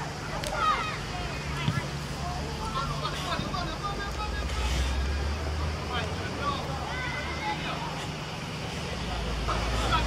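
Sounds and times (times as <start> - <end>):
distant footballers shouting: 0.0 - 10.0
outdoor noise: 0.0 - 10.0.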